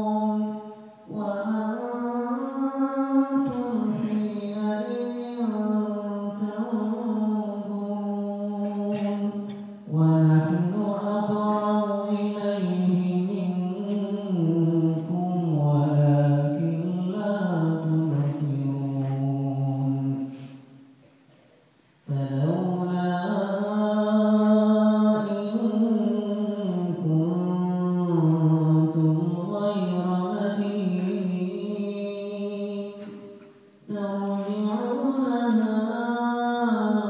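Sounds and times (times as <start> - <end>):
man reciting melodically into microphone: 0.0 - 20.9, 22.0 - 37.0.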